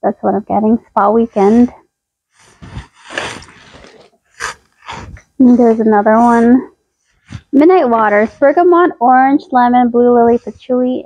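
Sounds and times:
person sniffing: 2.4s - 8.6s.

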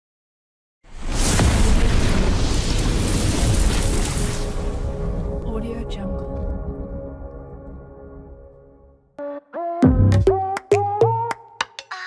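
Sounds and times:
fire and explosion rumble: 0.9s - 7.9s.

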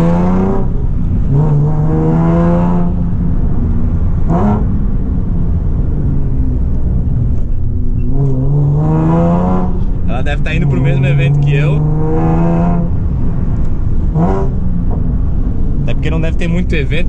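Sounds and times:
car engine revving: 0.0s - 17.0s.

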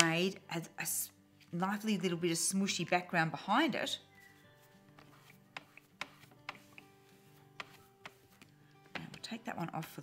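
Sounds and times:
background music of held chords: 0.0s - 10.0s.

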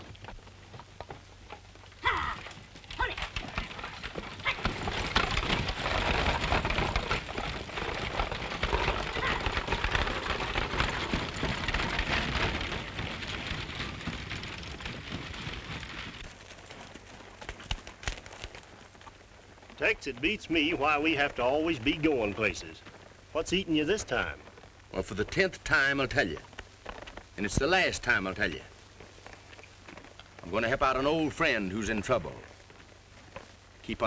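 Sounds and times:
horses galloping hoofbeats: 0.0s - 34.0s
person shouting: 2.0s - 2.4s.

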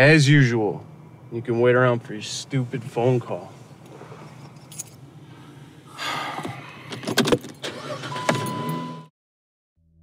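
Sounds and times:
car engine hum: 0.0s - 9.0s.

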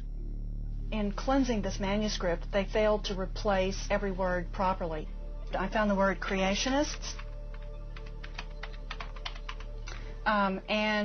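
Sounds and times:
faint background music: 0.0s - 11.0s
keyboard typing clicks: 6.6s - 10.0s.

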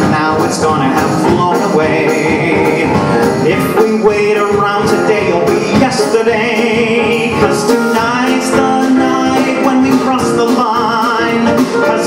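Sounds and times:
live band accompaniment: 0.0s - 12.0s.

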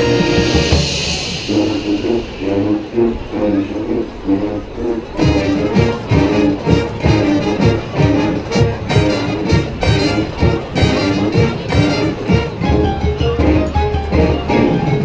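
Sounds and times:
low drum beat: 0.0s - 4.3s, 5.0s - 15.0s
marching band wind chords: 0.0s - 15.0s.

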